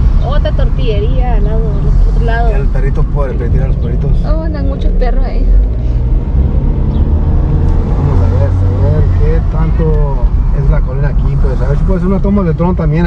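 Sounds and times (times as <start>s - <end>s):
car rumbling: 0.0s - 13.0s
people talking: 0.2s - 5.6s, 8.0s - 13.0s.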